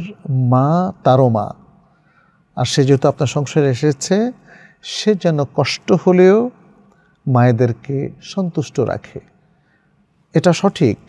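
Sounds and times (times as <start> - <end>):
man speaking: 0.0 - 1.6, 2.6 - 6.6, 7.2 - 9.3, 10.3 - 11.0
sharp intake of breath: 4.4 - 4.8.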